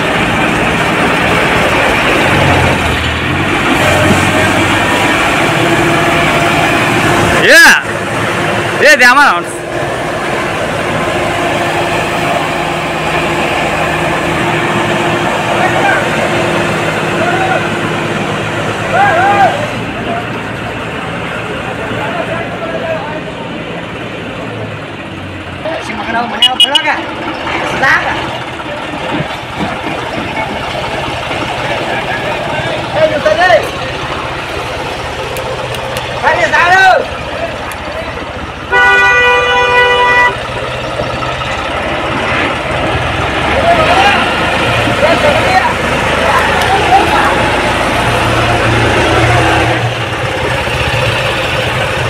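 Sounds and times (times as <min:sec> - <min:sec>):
tractor diesel engine running: 0:00.0 - 0:52.0
people's voices: 0:14.8 - 0:38.7, 0:39.6 - 0:52.0
vehicle horn blast: 0:26.4 - 0:26.8, 0:38.7 - 0:40.4.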